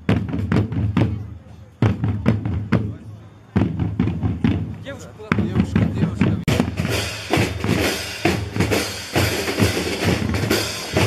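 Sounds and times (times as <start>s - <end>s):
snare drums beating: 0.0s - 3.0s, 3.6s - 11.0s
bass drums beating: 0.0s - 11.0s.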